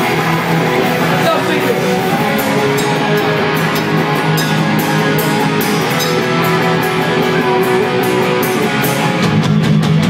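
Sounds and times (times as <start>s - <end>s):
bass guitar: 0.0s - 10.0s
distorted electric guitar: 0.0s - 10.0s.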